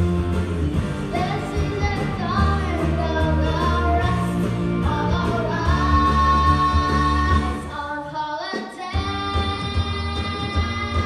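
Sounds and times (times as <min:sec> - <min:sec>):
rock band with bass and drums: 0:00.0 - 0:11.0
girl singing rock song: 0:01.0 - 0:11.0.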